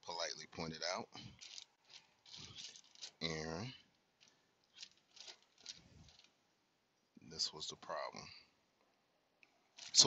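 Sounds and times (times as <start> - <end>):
plastic bags crinkling: 1.2 - 3.5, 4.1 - 6.4, 9.7 - 10.0.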